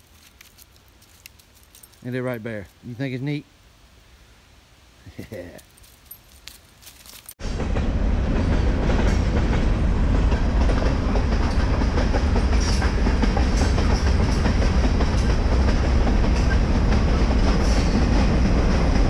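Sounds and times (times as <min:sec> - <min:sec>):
freight train rumbling past: 0:07.4 - 0:19.0
wheels clacking over rails: 0:08.4 - 0:19.0.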